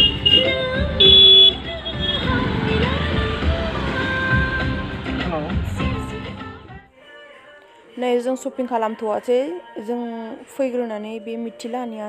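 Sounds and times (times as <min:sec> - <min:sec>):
vehicle horn: 0:00.0 - 0:02.8
traffic rumble: 0:00.0 - 0:06.3
background music: 0:00.0 - 0:12.0.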